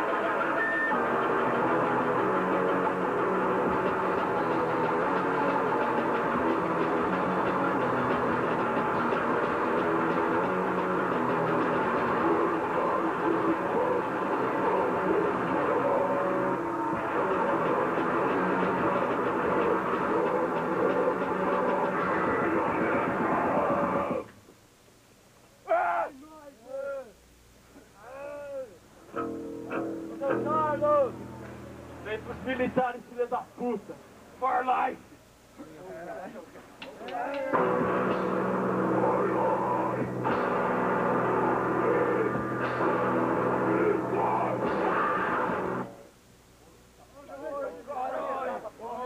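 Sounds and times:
distorted guitar: 0:00.0 - 0:24.3, 0:29.1 - 0:32.6, 0:37.5 - 0:46.1
drums: 0:00.0 - 0:26.2, 0:36.4 - 0:47.2.

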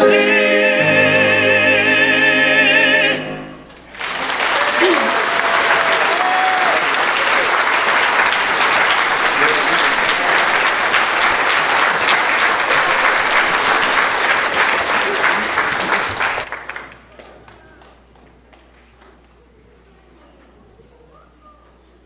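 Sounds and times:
audience applauding: 0:03.7 - 0:19.2
voices: 0:19.3 - 0:22.0.

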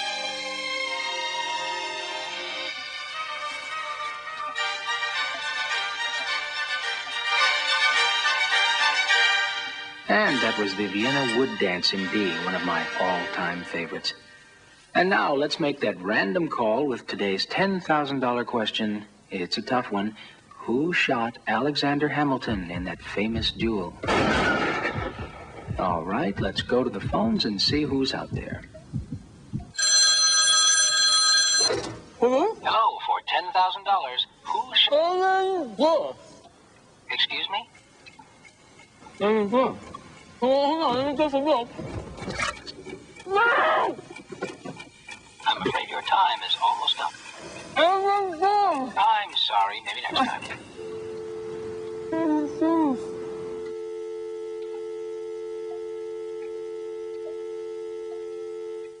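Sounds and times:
telephone dial tone: 0:29.8 - 0:31.9, 0:50.8 - 0:59.0
desk telephone ringing: 0:29.8 - 0:32.0.

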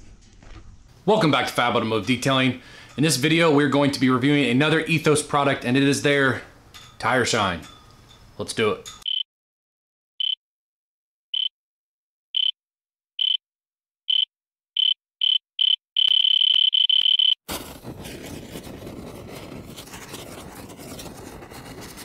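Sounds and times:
high-pitched electronic beeps: 0:14.1 - 0:17.4
rushing crackling noise effect: 0:17.5 - 0:22.0.

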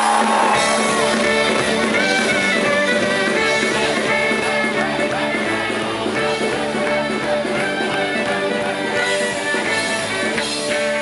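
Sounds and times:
bass guitar: 0:00.0 - 0:11.0
drums: 0:00.0 - 0:11.0
electric guitar: 0:00.0 - 0:11.0
fiddle melody: 0:00.6 - 0:11.0.

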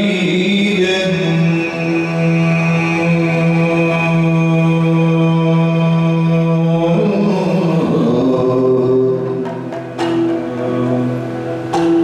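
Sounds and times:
person singing long wavering notes: 0:00.0 - 0:09.8
steady drone: 0:01.2 - 0:12.0.

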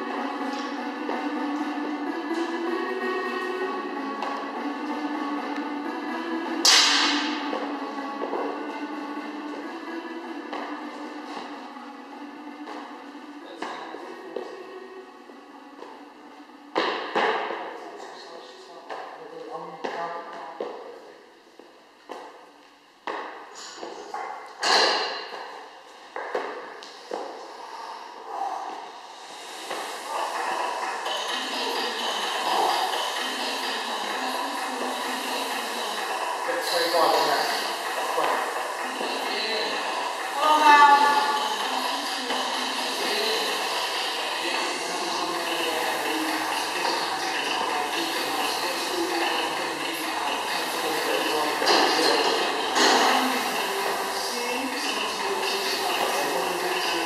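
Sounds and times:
background music: 0:00.0 - 0:17.6, 0:28.8 - 0:57.0.

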